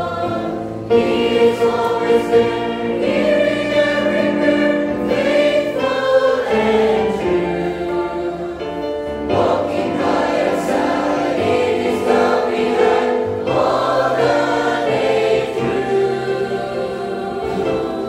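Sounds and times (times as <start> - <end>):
mixed choir singing a hymn: 0.0 - 18.0.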